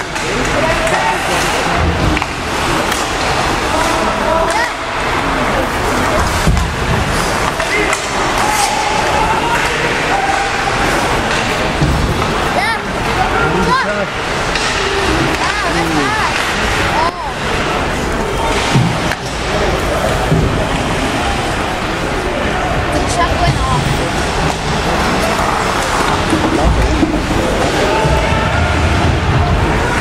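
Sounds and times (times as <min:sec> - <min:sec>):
stick and puck clacks: 0:00.0 - 0:04.8, 0:06.2 - 0:12.5, 0:14.4 - 0:17.0
hum of spectators' voices: 0:00.0 - 0:30.0.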